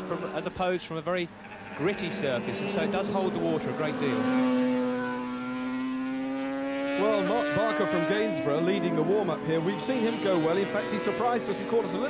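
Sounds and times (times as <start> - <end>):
racing motorcycle engine revving: 0.0 - 0.6, 1.3 - 12.0.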